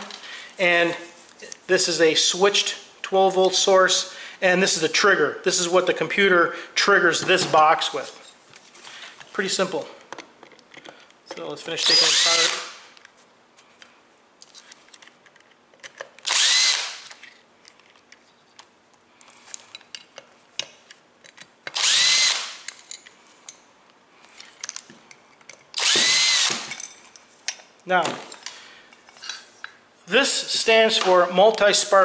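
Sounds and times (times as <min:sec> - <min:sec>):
power drill motor whine: 0:11.8 - 0:12.8, 0:16.2 - 0:17.1, 0:21.8 - 0:22.6, 0:25.8 - 0:26.7
screws and handling clicks: 0:13.8 - 0:23.6, 0:24.2 - 0:27.6.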